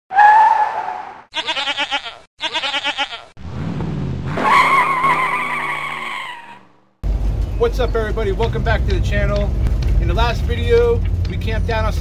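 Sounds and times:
tire squeal: 0:00.1 - 0:01.2, 0:04.2 - 0:06.8
goat bleating: 0:01.3 - 0:03.4.

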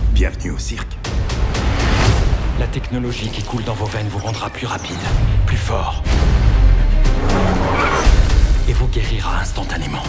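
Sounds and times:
film music score: 0:00.0 - 0:10.0.

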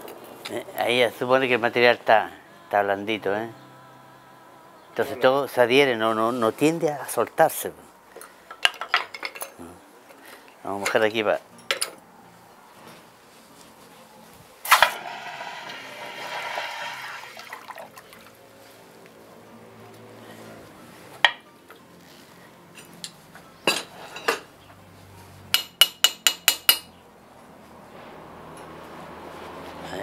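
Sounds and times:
hot iron hissing in water: 0:14.7 - 0:17.6.

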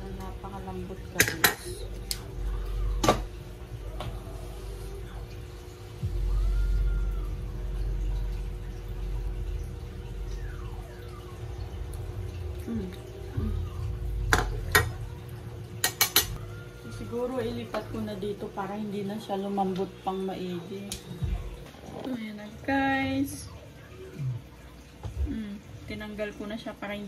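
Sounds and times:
steady hum: 0:00.0 - 0:27.0.

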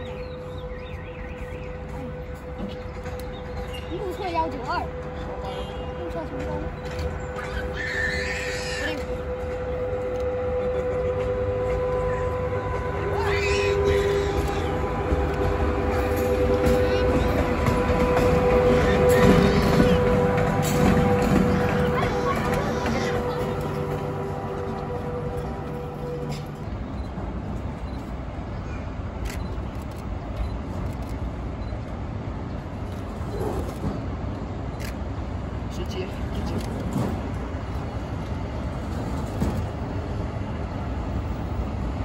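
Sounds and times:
electric locomotive passing: 0:00.0 - 0:42.0.

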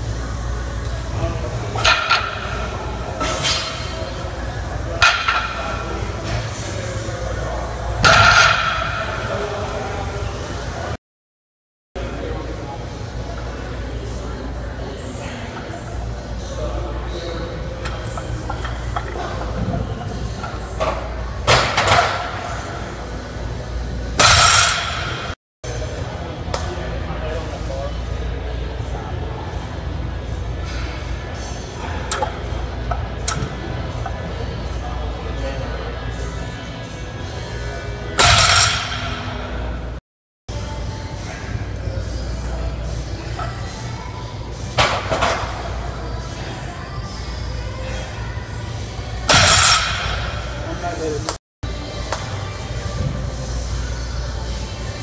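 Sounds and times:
barbell crashing on floor: 0:24.2 - 0:25.1, 0:38.2 - 0:39.1, 0:49.3 - 0:50.2.

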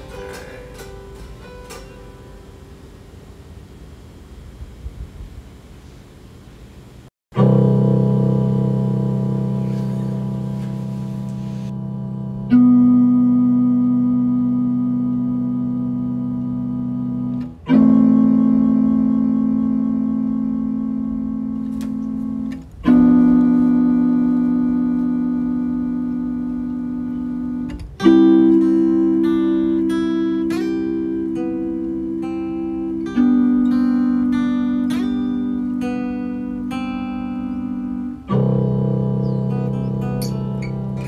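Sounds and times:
plucked guitar notes: 0:00.0 - 0:03.2, 0:07.3 - 0:41.0
guitar chord ringing: 0:00.0 - 0:03.8, 0:07.3 - 0:41.0.

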